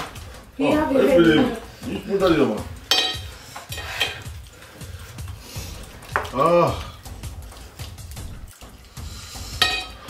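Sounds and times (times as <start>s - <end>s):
faint background music: 0.0s - 10.0s
chopsticks clicking on ceramic plates: 6.0s - 6.4s.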